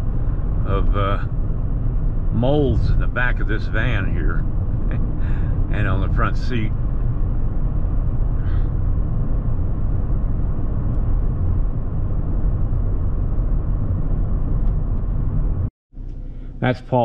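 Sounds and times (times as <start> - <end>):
road and engine rumble in van: 0.0 - 16.7.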